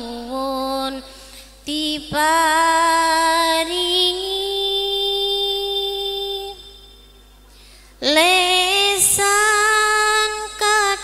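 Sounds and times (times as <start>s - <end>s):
woman singing into a microphone: 0.0s - 6.9s, 8.0s - 11.0s.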